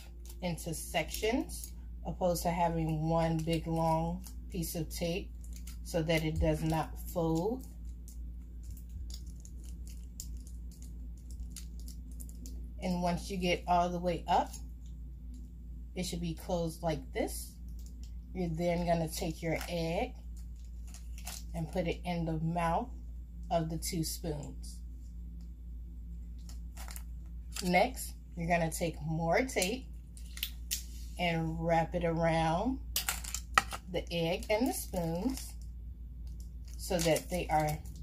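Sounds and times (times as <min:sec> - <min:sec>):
steady low hum: 0:00.0 - 0:38.0
plastic tape crinkling: 0:02.8 - 0:12.6, 0:19.0 - 0:21.6, 0:26.4 - 0:27.7, 0:29.6 - 0:30.9, 0:32.9 - 0:38.0.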